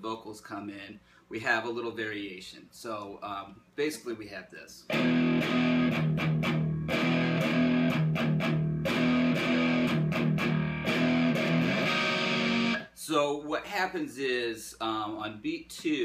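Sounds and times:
electric guitar power chord riff: 4.9 - 12.8.

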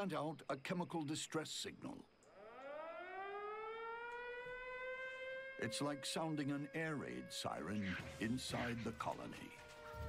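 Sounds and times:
air-raid siren wailing: 2.3 - 10.0.

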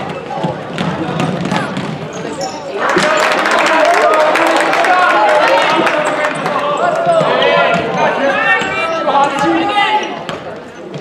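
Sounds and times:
basketball bouncing on wooden floor: 0.0 - 2.2
crowd noise: 0.0 - 11.0.

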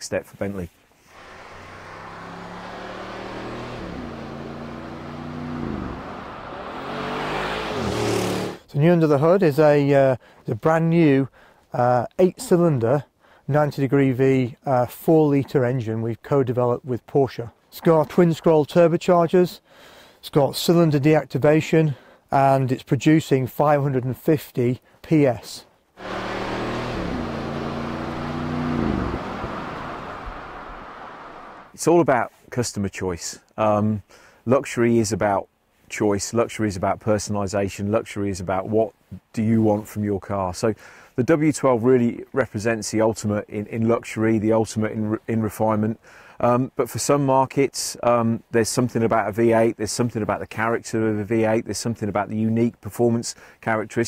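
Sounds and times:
car engine accelerating past: 1.1 - 8.6, 26.0 - 31.7.

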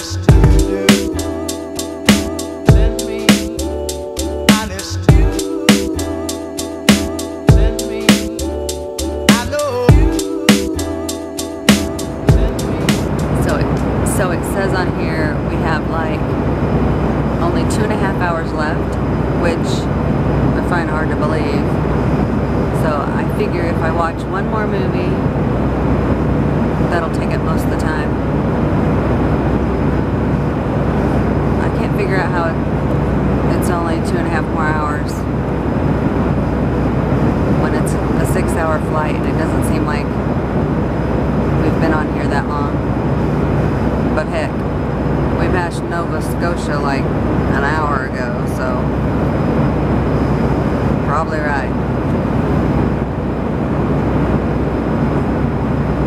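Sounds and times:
jet airliner cabin noise: 0.0 - 56.0.

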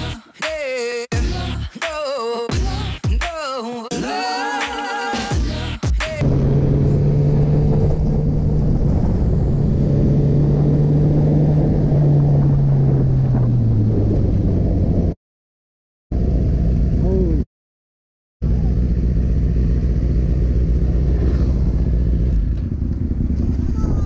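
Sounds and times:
music: 0.0 - 6.2
motorcycle engine: 6.2 - 15.2, 18.4 - 24.0
road and wind noise: 6.2 - 15.2, 16.1 - 17.4, 18.4 - 24.0.

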